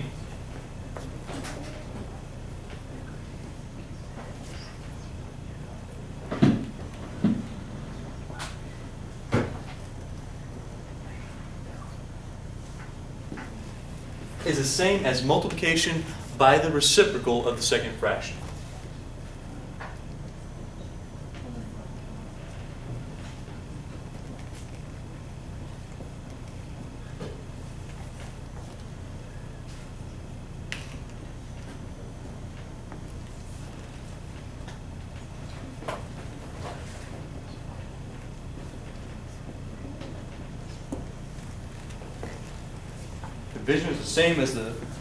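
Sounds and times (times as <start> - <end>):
low room hum: 0.0 - 45.0.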